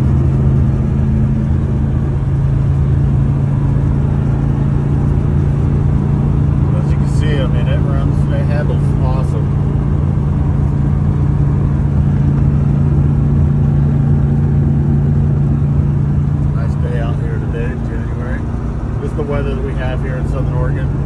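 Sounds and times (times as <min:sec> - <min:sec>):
truck engine drone and road rumble: 0:00.0 - 0:21.0.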